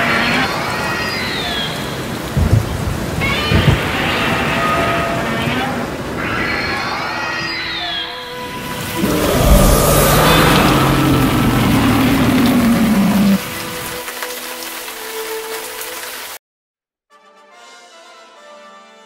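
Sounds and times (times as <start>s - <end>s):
rain: 0.0s - 16.4s
thunder rumbling: 2.4s - 4.5s, 8.8s - 13.4s.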